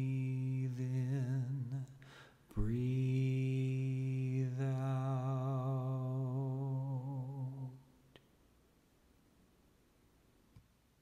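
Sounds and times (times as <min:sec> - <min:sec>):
low voice singing with vibrato: 0:00.0 - 0:07.9.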